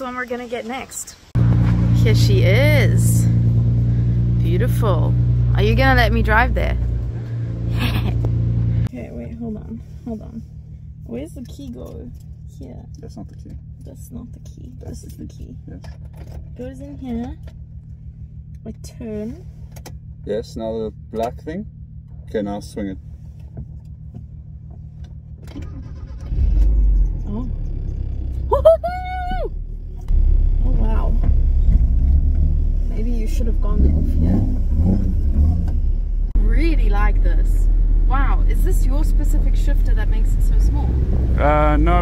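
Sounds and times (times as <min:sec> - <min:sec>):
car engine idling: 0:00.0 - 0:42.0.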